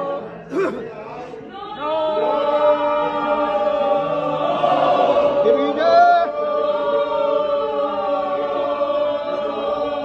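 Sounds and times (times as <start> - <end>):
group chanting in unison: 0.0 - 10.0.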